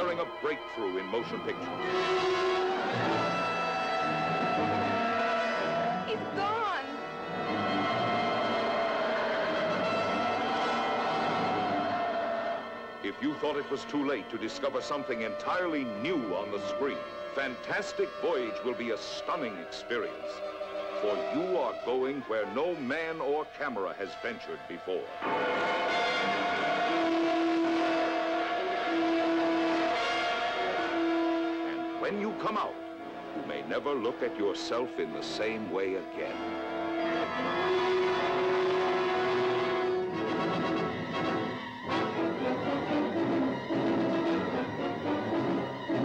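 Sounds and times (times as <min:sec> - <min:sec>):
sustained wavering tone: 0:00.0 - 0:46.0
rushing roar: 0:01.4 - 0:22.9, 0:25.0 - 0:46.0.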